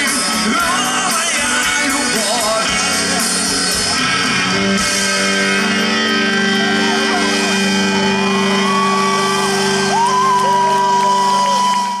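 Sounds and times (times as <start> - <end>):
rock band sustained chord: 0.0 - 11.7
crowd shouting: 6.4 - 12.0.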